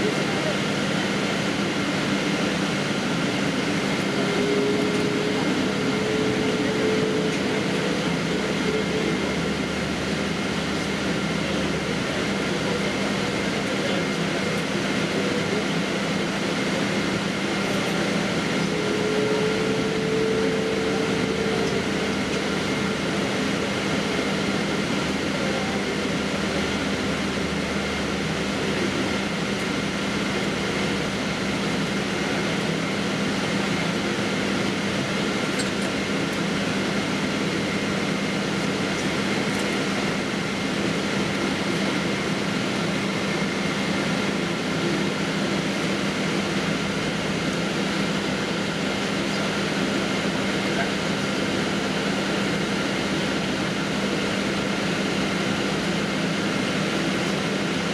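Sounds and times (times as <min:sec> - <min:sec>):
airplane engines idling: 0:00.0 - 0:57.9.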